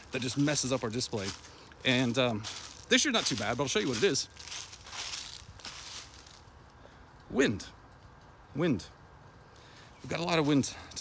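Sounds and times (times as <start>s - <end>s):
faint rustling and crunching: 0.0s - 8.3s
low steady hiss: 0.0s - 11.0s.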